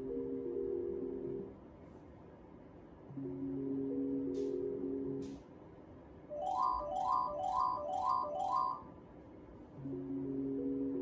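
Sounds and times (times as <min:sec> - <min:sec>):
slot machine reel-spin tune: 0:06.3 - 0:08.9
slot machine win jingle: 0:06.3 - 0:08.9.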